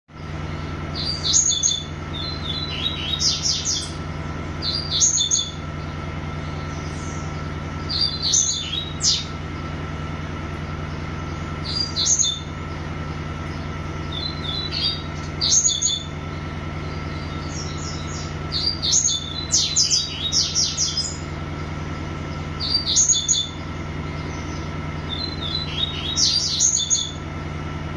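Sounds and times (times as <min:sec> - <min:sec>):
songbird singing: 0:00.1 - 0:27.9
steady low hum: 0:00.1 - 0:27.9.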